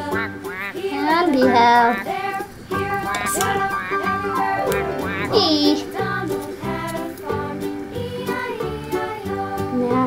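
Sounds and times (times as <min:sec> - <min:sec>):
melody with swooping notes: 0:02.7 - 0:06.8
low bass notes: 0:02.8 - 0:06.4.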